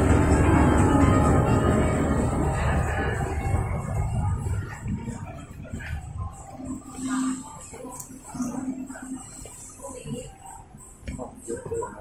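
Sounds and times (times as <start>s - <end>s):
background music: 0.0s - 12.0s
low indoor ambient rumble: 0.0s - 12.0s.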